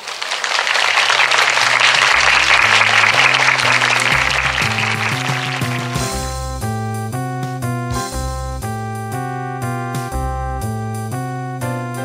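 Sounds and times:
crowd clapping: 0:00.0 - 0:06.4
music with bass and keyboard: 0:01.7 - 0:12.0.

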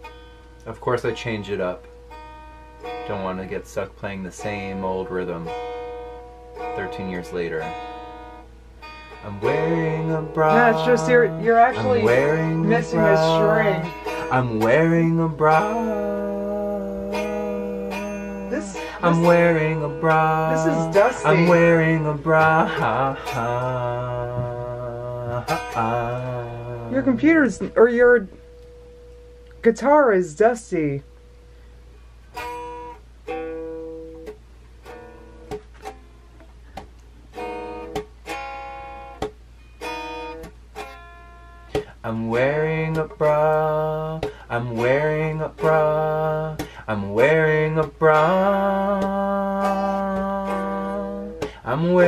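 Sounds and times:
guitar strummed: 0:00.0 - 0:52.0
man singing a long note: 0:09.2 - 0:27.3, 0:42.0 - 0:52.0.

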